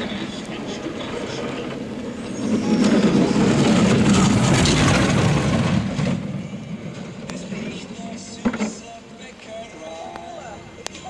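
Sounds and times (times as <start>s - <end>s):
bobsleigh runners rumbling on ice: 0.0s - 9.6s.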